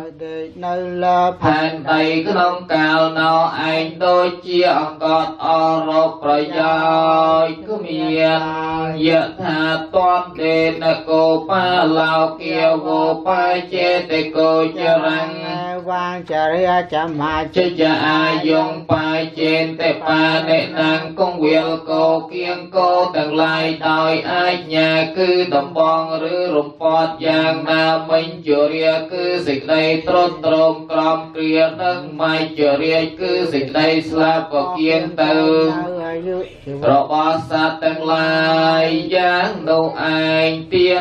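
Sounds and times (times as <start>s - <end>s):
voices chanting together: 0.0s - 41.0s.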